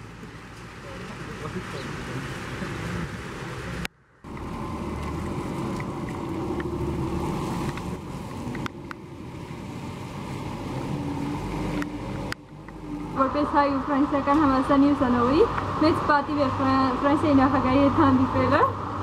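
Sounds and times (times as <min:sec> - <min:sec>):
low engine noise: 0:00.0 - 0:19.0
tyres hissing on wet road: 0:00.0 - 0:19.0.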